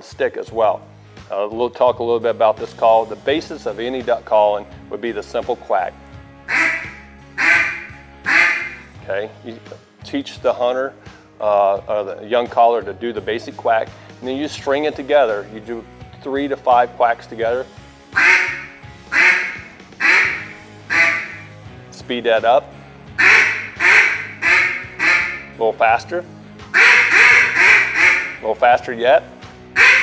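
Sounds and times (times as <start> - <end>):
duck call quacks: 6.5 - 8.8, 18.2 - 21.4, 23.2 - 25.5, 26.7 - 28.4, 29.8 - 30.0.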